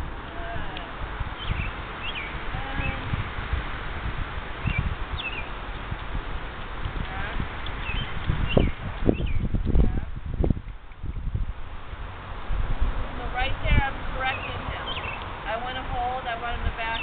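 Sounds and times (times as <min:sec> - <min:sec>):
wind buffeting microphone: 0:00.0 - 0:17.0
small birds chirping: 0:00.3 - 0:03.2, 0:04.6 - 0:09.8, 0:13.8 - 0:15.5.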